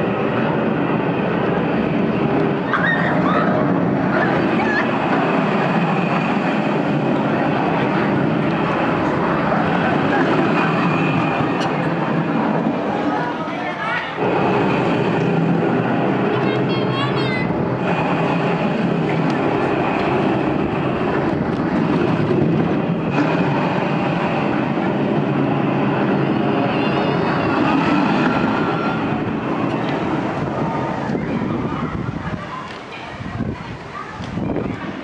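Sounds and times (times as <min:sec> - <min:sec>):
roller coaster rumbling on track: 0:00.0 - 0:35.0.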